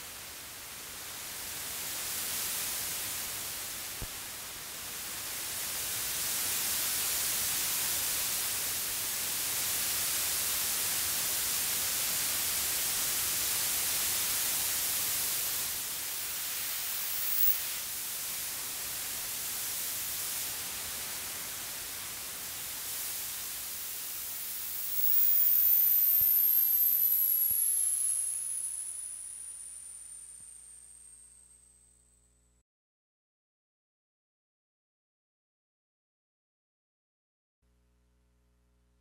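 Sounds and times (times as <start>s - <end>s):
synthesizer noise hiss: 1.5s - 32.2s
small click: 24.9s - 31.6s.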